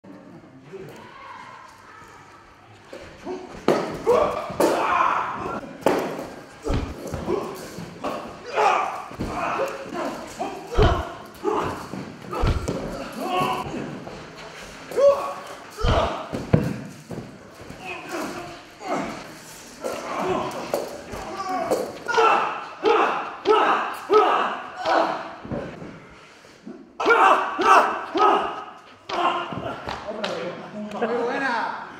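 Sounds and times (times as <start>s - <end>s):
voices: 0.1s - 16.9s
thuds on padded mats: 6.7s - 7.4s, 10.7s - 13.1s, 15.8s - 17.3s.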